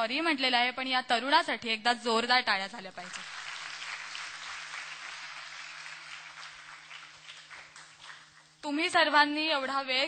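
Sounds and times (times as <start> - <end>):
audience applauding: 3.1 - 8.4.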